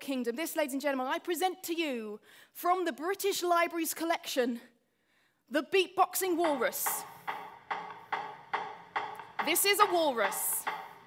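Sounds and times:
walrus knocking: 6.4 - 11.0.

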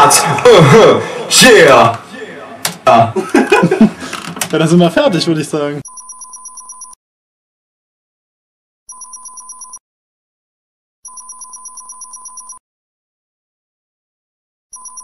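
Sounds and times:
rapid electronic beeps: 5.9 - 7.0.

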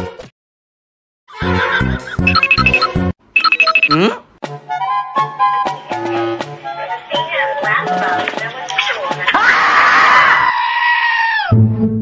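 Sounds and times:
cat yowling: 10.0 - 11.5.

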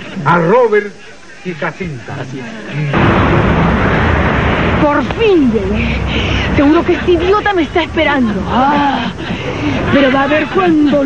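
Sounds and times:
street traffic rumble and hiss: 2.3 - 11.0.

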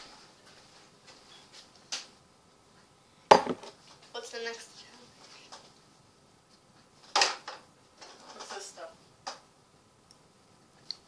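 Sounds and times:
glass set down on table: 3.3 - 3.8.

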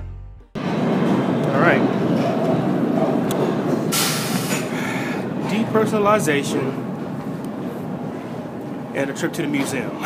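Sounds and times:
subway train rumble and rattle: 0.6 - 10.0.

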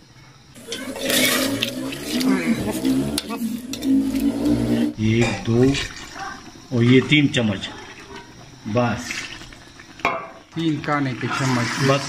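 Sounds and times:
metal ladle scraping pot: 0.6 - 6.2.

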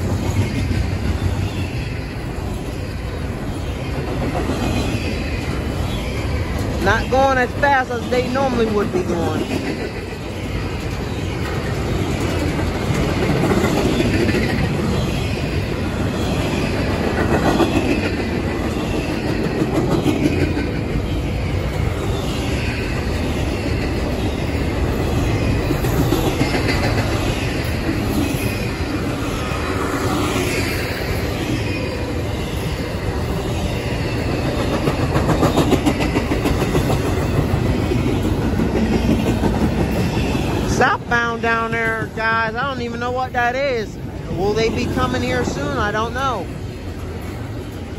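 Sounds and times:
train wheels rumbling on rails: 0.0 - 47.9.

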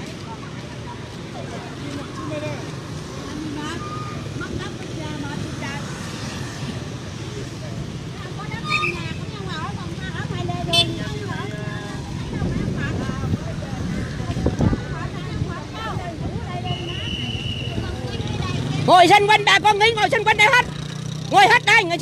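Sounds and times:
road traffic: 0.0 - 22.0
people talking: 7.4 - 22.0.

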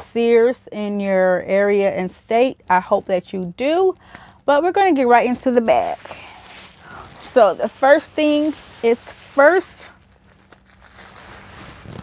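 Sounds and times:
faint steady hum: 0.0 - 12.0
shopping bag rustling: 5.4 - 12.0.

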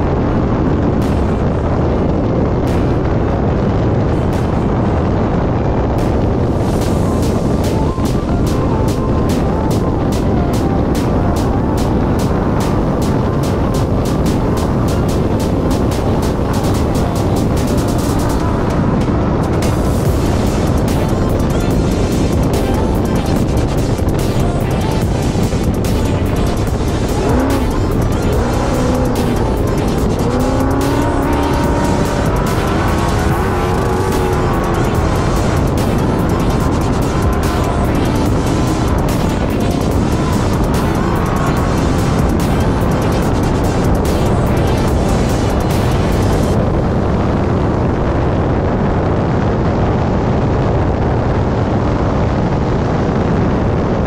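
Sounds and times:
background music: 0.0 - 48.7
race car engine at speed: 0.0 - 54.0.

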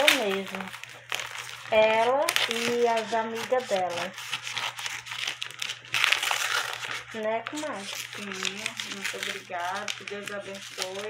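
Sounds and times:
scissors cutting packing tape: 0.0 - 11.0
tape and cardboard crinkling: 0.0 - 11.0.

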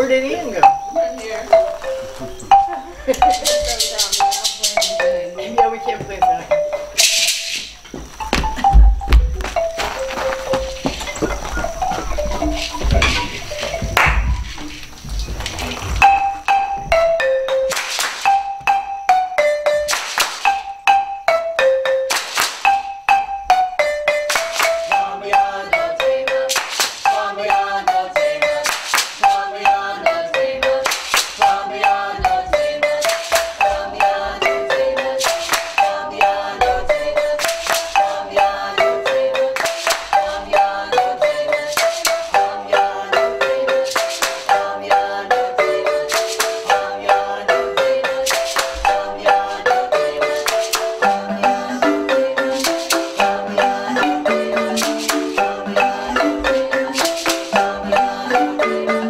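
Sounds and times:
marimba ensemble: 0.0 - 59.0
shaker keeping time: 0.0 - 59.0.

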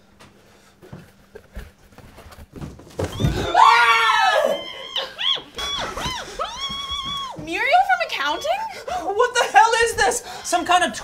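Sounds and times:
loud high scream: 3.1 - 7.4
rising and falling cries: 3.1 - 7.4.

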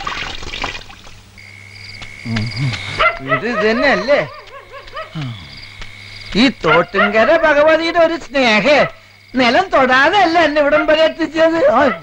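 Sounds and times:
insects chirring: 0.0 - 12.0
wavering voice-like calls: 2.2 - 5.6.

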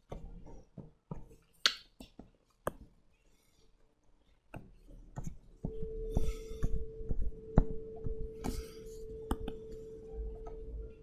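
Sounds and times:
sharp clicks and taps: 4.5 - 9.8.

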